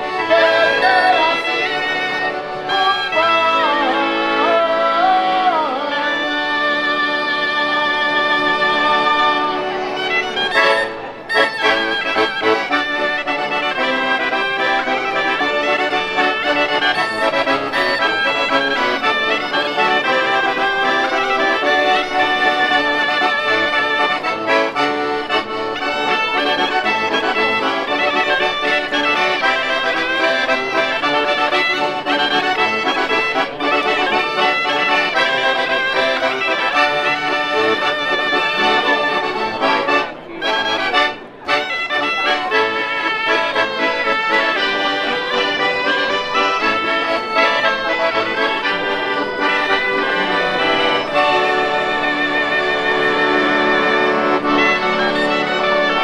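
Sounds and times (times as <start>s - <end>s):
shawm playing dance tune: 0.0s - 2.9s, 10.2s - 39.6s, 42.1s - 56.0s
accordion: 0.0s - 56.0s.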